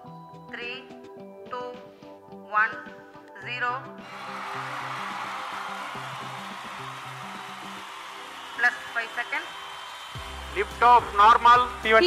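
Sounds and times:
background music low notes: 0:00.0 - 0:12.0.

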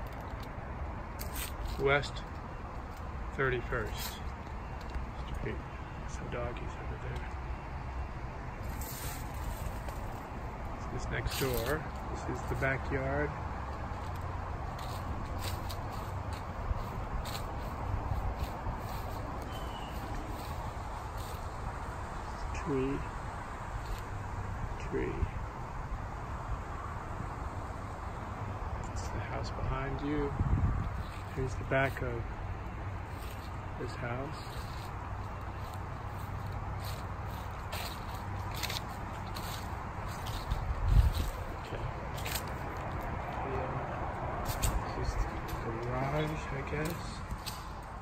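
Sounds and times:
low outdoor rumble: 0:00.0 - 0:48.0
footsteps through grass and leaves: 0:01.2 - 0:05.2, 0:08.6 - 0:22.1, 0:30.8 - 0:48.0
man speaking: 0:01.8 - 0:02.3, 0:03.3 - 0:04.2, 0:05.2 - 0:07.3, 0:10.8 - 0:13.4, 0:22.3 - 0:23.2, 0:28.8 - 0:30.4, 0:31.3 - 0:32.3, 0:33.8 - 0:34.6, 0:43.3 - 0:44.0, 0:44.8 - 0:47.3
wind rumble on microphone: 0:28.5 - 0:31.7, 0:36.6 - 0:46.3.

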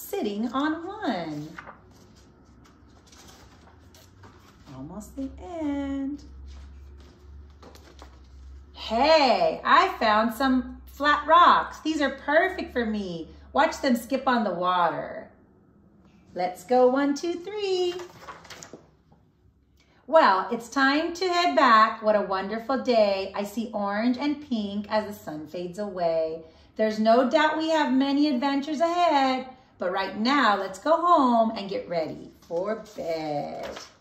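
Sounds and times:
book pages rustling: 0:00.4 - 0:05.2, 0:06.1 - 0:08.7, 0:17.9 - 0:19.2, 0:32.3 - 0:34.0.

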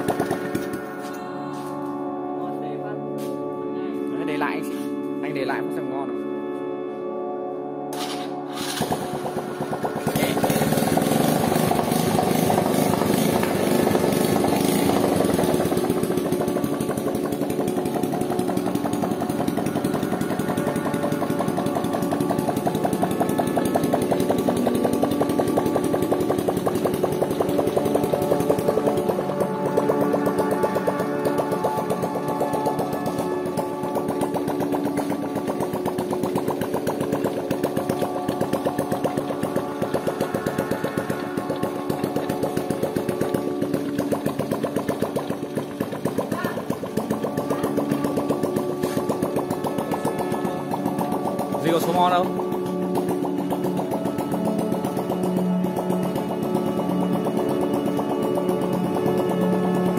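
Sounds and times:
motorcycle engine idling: 0:00.0 - 0:01.1, 0:08.0 - 0:59.9.

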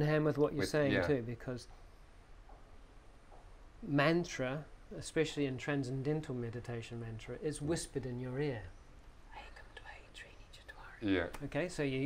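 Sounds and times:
man whispering: 0:09.3 - 0:11.3.

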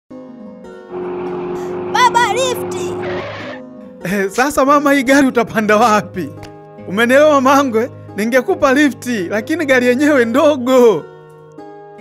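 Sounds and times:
background music with held notes: 0:00.1 - 0:12.0
car driving up: 0:00.9 - 0:03.6.

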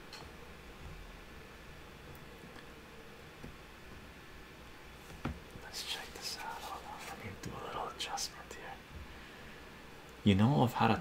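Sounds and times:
man whispering: 0:05.6 - 0:08.9.

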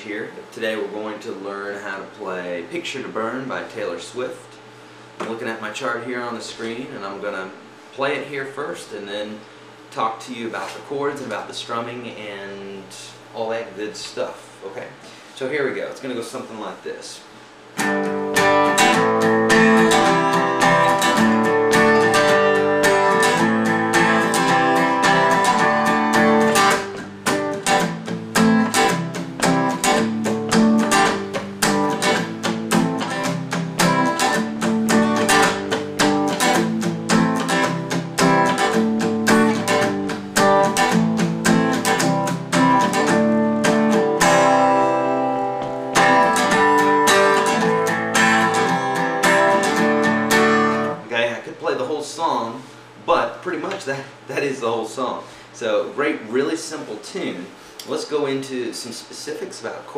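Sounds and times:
acoustic guitar strumming: 0:17.8 - 0:51.1.

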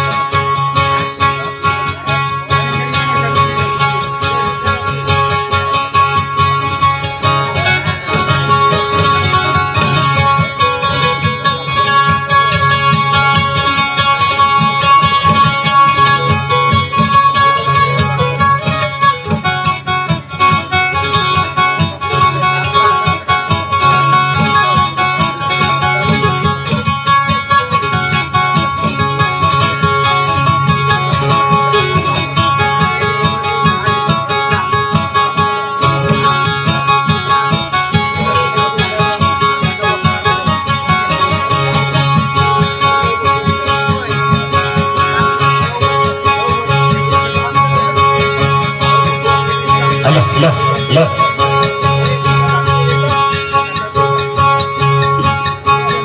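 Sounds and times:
acoustic guitar plucked: 0:00.0 - 0:56.0.

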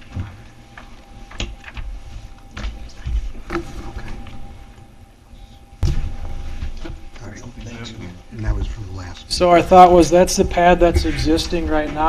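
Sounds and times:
loud thump: 0:05.8 - 0:06.2.

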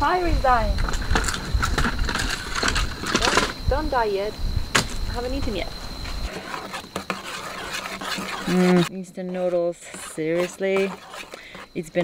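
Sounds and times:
spoon scraping metal pot: 0:06.3 - 0:12.0
woman humming: 0:08.4 - 0:09.1.

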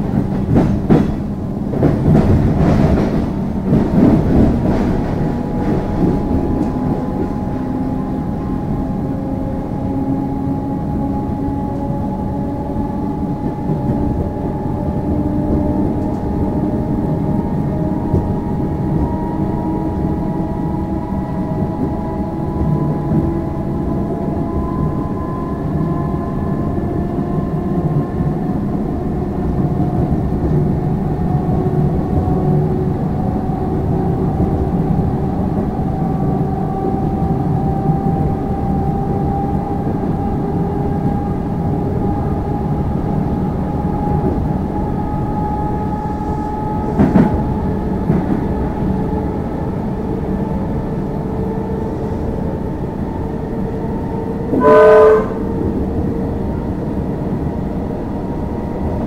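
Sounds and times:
train wheels rumbling on track: 0:00.0 - 0:59.0
short train horn blast: 0:54.5 - 0:55.6.

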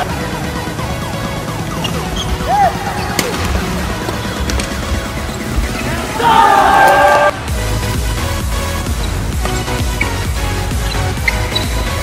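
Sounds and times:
background music: 0:00.0 - 0:12.0
shoe squeak on court floor: 0:01.7 - 0:03.2, 0:09.0 - 0:12.0
racket striking shuttlecock: 0:03.1 - 0:04.7.

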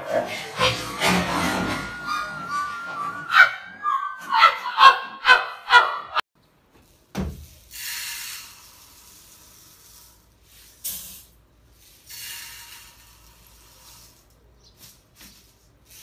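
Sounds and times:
music with short pitched notes: 0:00.0 - 0:04.1
thump: 0:07.1 - 0:07.5.

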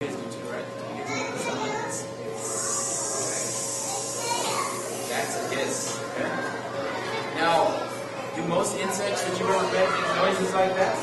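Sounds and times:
children chattering: 0:01.0 - 0:11.0
cockroach hissing: 0:02.4 - 0:06.0.

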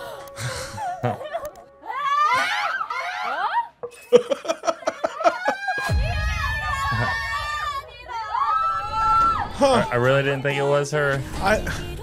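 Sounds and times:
women gasping and shrieking: 0:00.0 - 0:03.8
women laughing: 0:00.4 - 0:01.7, 0:03.0 - 0:06.0.

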